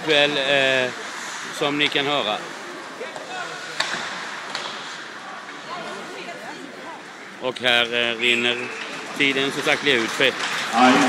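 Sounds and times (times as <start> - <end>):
arena crowd noise: 0.0 - 11.0
scattered voices: 0.0 - 11.0
sharp clacks from play on ice: 3.0 - 5.6, 8.6 - 11.0.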